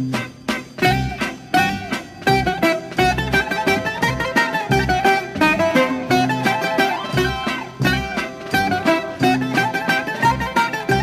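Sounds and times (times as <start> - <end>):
plucked-string melody with bass: 0.0 - 11.0.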